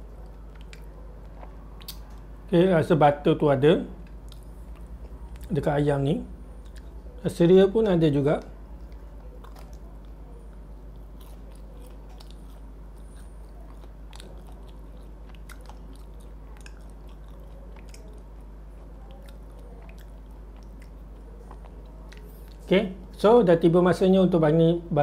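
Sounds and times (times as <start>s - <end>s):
person chewing crunchy fried chicken: 0.0s - 2.3s, 6.4s - 7.1s, 8.8s - 22.7s
steady low hum: 0.0s - 25.0s.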